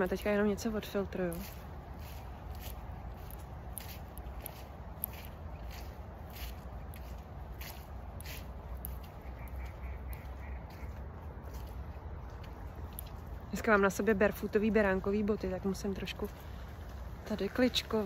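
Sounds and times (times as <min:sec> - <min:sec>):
footsteps crunching on path: 0:00.0 - 0:18.0.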